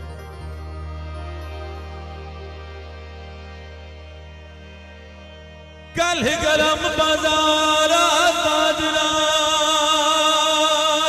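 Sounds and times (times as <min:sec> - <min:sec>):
musical accompaniment: 0:00.0 - 0:11.0
man singing: 0:05.9 - 0:11.0.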